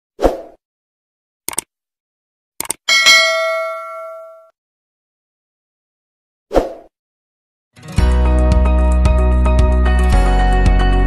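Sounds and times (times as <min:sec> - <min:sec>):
quick double clicks: 0:01.5 - 0:01.7, 0:02.6 - 0:02.8
bell ding: 0:02.9 - 0:04.5.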